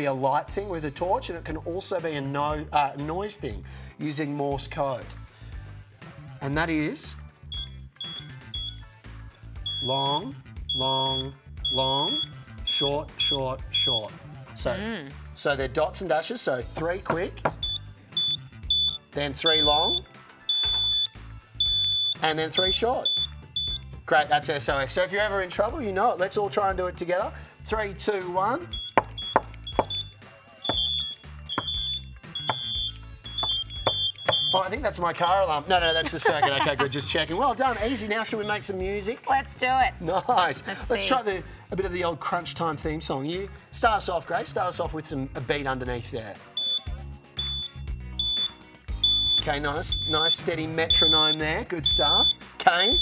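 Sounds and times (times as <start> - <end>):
electronic buzzer beeps: 7.5 - 8.9, 9.6 - 14.1, 17.6 - 23.9, 28.7 - 36.2, 46.6 - 53.0.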